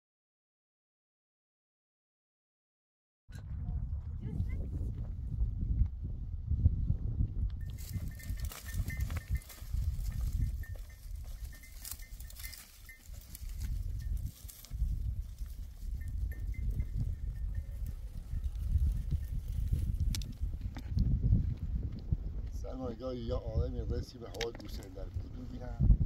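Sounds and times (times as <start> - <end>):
steady low rumble: 3.3 - 8.5
small bell clinking: 7.6 - 19.7.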